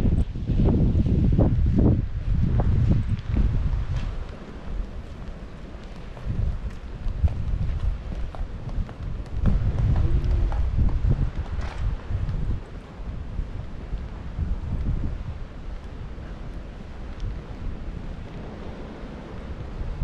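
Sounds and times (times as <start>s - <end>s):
wind buffeting microphone: 0.0s - 20.0s
footsteps on tiles: 3.3s - 12.0s.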